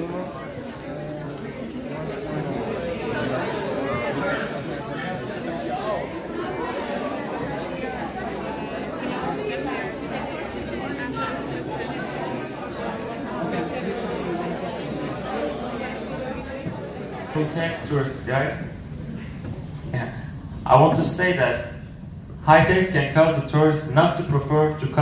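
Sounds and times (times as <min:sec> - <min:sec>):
chatter of many people: 0:00.0 - 0:25.0.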